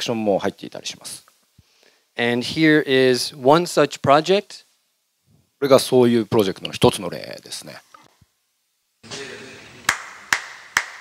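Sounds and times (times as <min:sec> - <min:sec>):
hand claps: 0:09.8 - 0:11.0.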